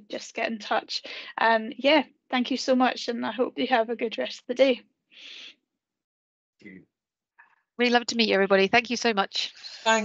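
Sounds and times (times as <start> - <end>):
person speaking: 9.5 - 10.0.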